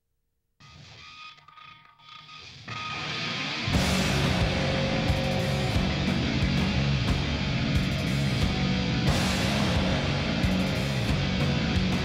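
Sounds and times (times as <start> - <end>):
rock guitar intro: 2.6 - 12.0
rock band playing: 2.9 - 12.0.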